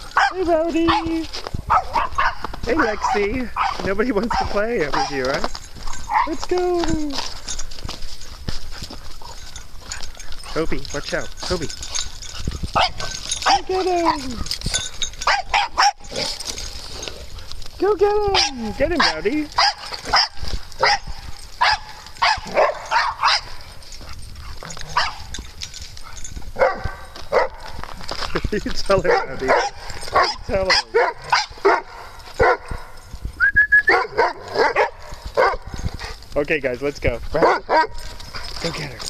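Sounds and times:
dog barking: 0.1 - 5.3, 5.9 - 6.4, 12.8 - 14.2, 15.2 - 16.3, 18.4 - 23.6, 24.9 - 25.3, 26.6 - 27.8, 29.0 - 32.9, 33.9 - 35.7, 37.4 - 38.0.

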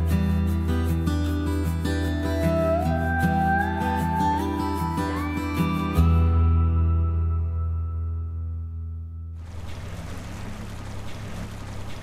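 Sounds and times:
outboard motor running: 9.4 - 12.0
water rushing past hull: 9.4 - 12.0.

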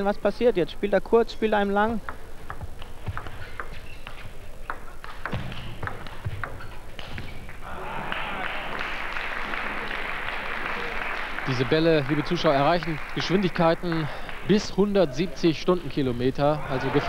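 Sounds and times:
ping pong ball clicking: 2.0 - 6.8
crowd applause: 7.6 - 15.1.

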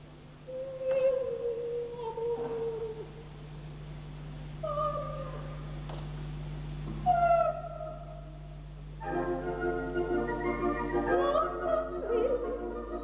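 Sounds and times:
low steady hum: 0.0 - 13.0
operatic soprano singing: 10.3 - 13.0.

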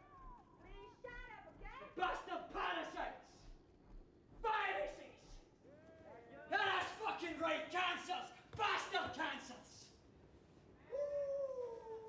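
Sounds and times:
man howling: 10.9 - 12.0.

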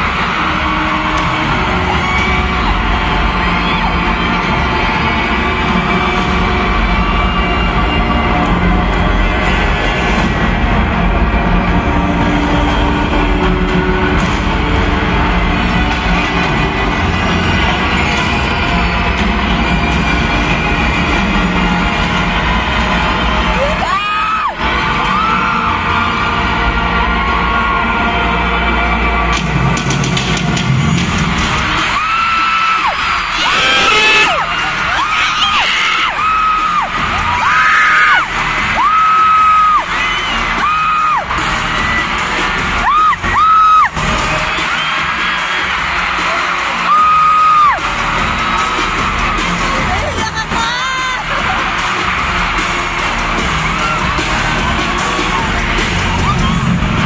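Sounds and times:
crowd cheering and yelling: 0.0 - 57.0
live pop concert music: 0.0 - 57.0.

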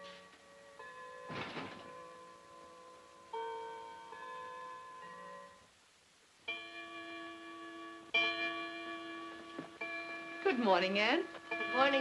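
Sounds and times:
clock chiming bell notes: 1.9 - 5.7, 6.5 - 12.0.

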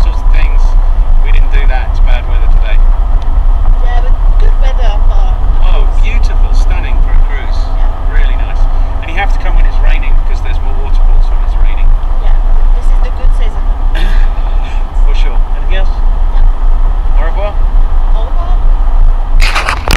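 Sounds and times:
tyre and engine rumble: 0.0 - 19.9.

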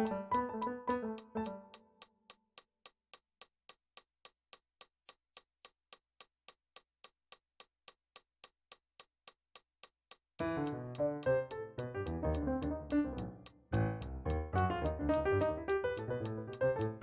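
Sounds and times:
piano note: 0.0 - 1.7, 10.4 - 17.0
faint metronome clicking: 0.0 - 3.0, 4.0 - 17.0.

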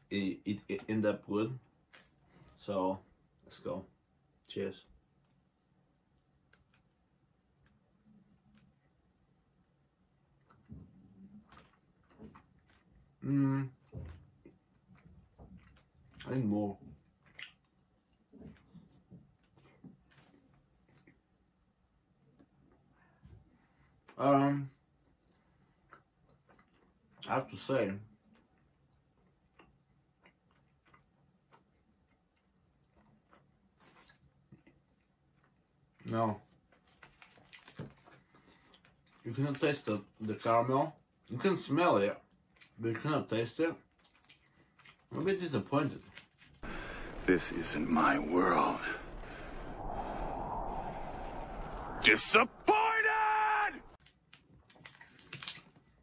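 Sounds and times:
chewing clicks: 28.3 - 33.5
low steady hum: 46.6 - 52.7
plastic wrapper crackling: 54.6 - 55.9.

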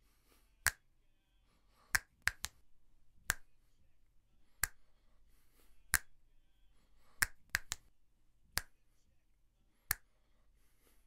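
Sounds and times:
finger snaps: 0.6 - 0.9, 1.9 - 2.6, 3.2 - 3.6, 4.5 - 4.9, 5.9 - 6.2, 7.1 - 7.9, 8.5 - 8.8, 9.9 - 10.1.

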